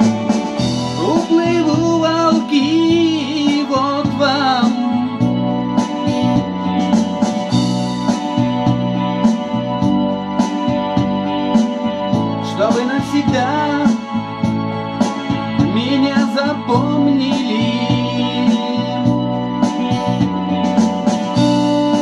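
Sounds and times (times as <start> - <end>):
drum machine beat: 0.0 - 22.0
electronic keyboard chords: 0.0 - 22.0
man singing: 1.0 - 5.4, 12.4 - 14.1, 15.6 - 19.4, 21.6 - 22.0.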